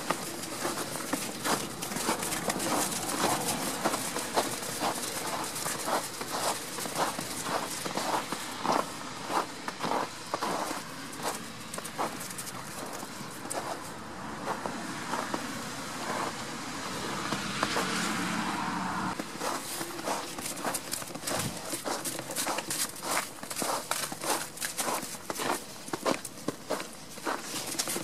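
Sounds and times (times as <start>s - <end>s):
footsteps in snow: 0.0s - 18.3s, 19.1s - 28.0s.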